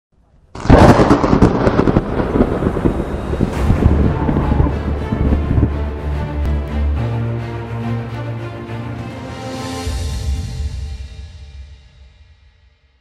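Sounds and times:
thunderclap crackling and rumbling: 0.4s - 6.2s.

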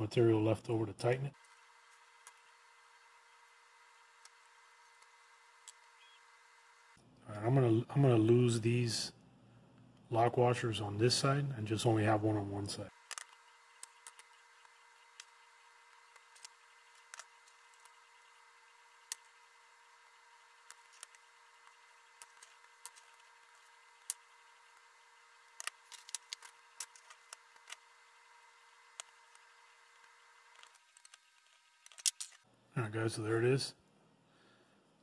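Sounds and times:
faint steady hum: 0.0s - 35.0s.

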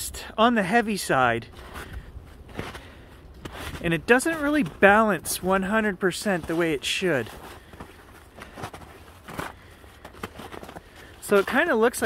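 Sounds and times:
footsteps in snow: 1.5s - 12.0s.

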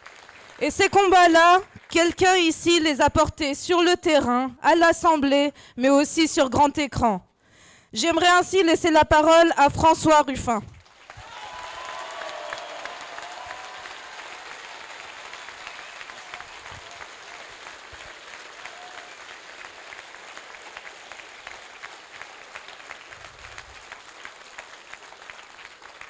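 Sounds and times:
large audience applauding: 0.0s - 2.4s, 10.7s - 26.0s.

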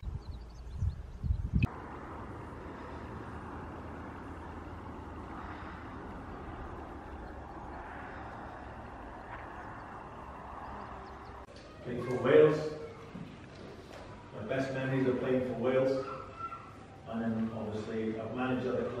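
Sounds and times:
wind rumbling on microphone: 0.0s - 11.5s.

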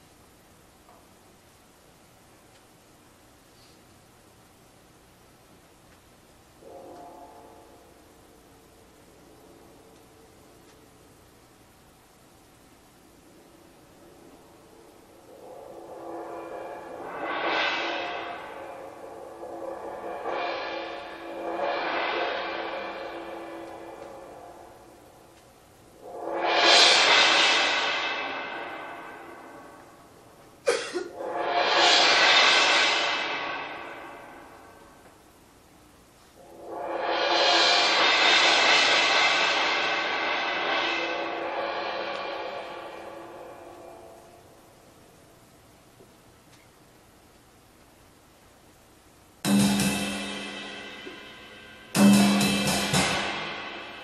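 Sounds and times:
cymbal washes: 14.7s - 45.2s, 49.2s - 54.0s
sharp cymbal strike: 14.8s - 35.5s, 36.4s - 45.4s, 49.4s - 54.0s.

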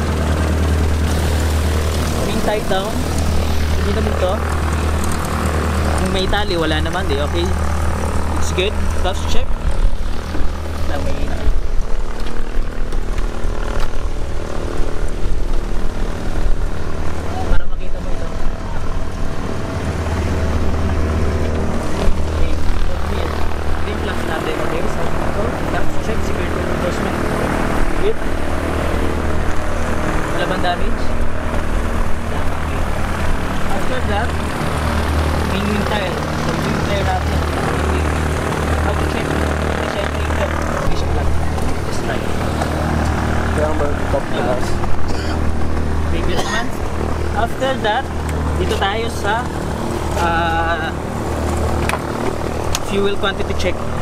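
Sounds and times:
deep rumble: 0.0s - 54.0s
light aircraft engine drone: 0.0s - 54.0s.

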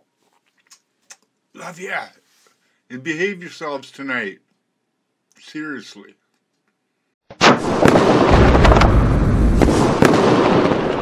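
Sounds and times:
fireworks bangs and crackling: 7.4s - 11.0s
deep rumble: 8.3s - 9.7s.

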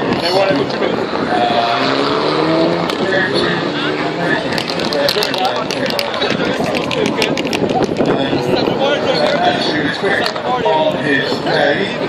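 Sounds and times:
rally car engine at speed: 0.0s - 12.0s
spectators chatting: 0.0s - 12.0s.

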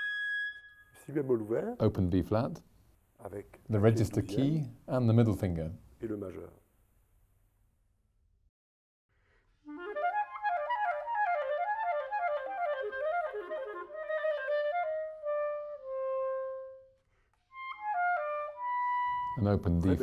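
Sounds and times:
clarinet playing: 9.6s - 19.6s.

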